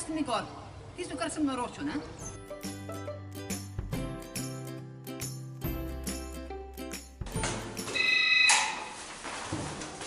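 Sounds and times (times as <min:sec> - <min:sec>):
electric doorbell buzzing: 0:07.8 - 0:08.8.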